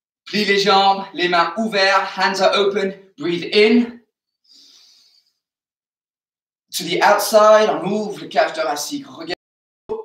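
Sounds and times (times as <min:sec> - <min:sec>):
in-breath through nose: 0:04.4 - 0:05.5.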